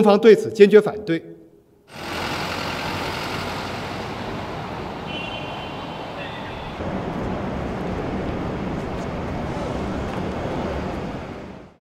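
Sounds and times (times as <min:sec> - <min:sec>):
street traffic noise: 0:01.9 - 0:11.8
van driving past: 0:01.9 - 0:11.8.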